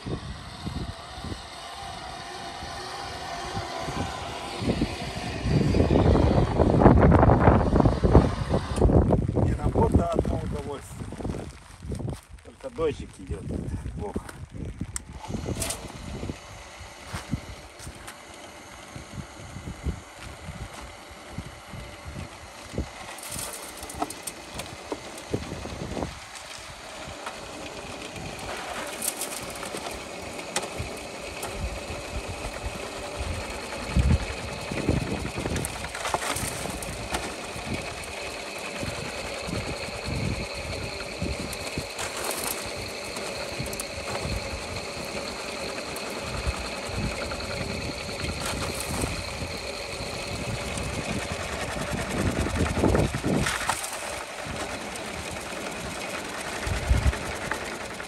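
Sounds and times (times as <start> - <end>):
electric soil sieve running: 0.0 - 58.0
shovel scraping and knocking: 35.5 - 37.5, 41.9 - 44.3.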